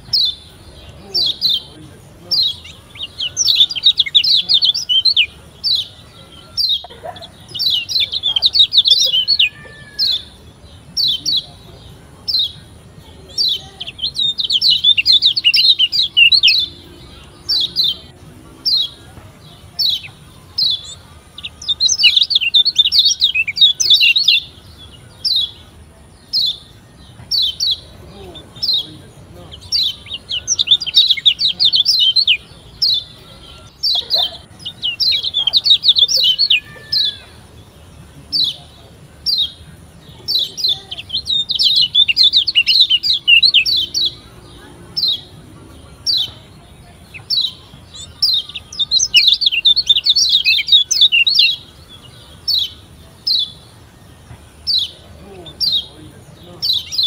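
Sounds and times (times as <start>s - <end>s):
bird chirping: 0.0s - 57.0s
rapid twittering birdsong: 0.0s - 57.0s.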